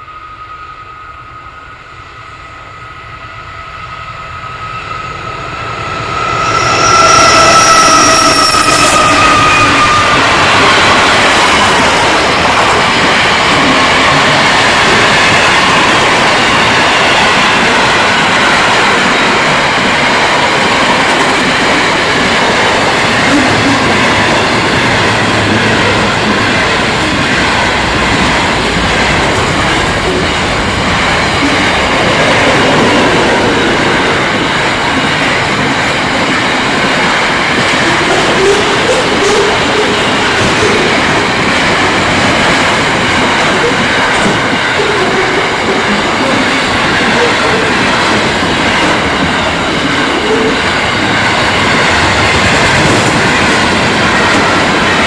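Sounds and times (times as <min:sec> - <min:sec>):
train wagons rolling past: 0:04.4 - 0:55.0.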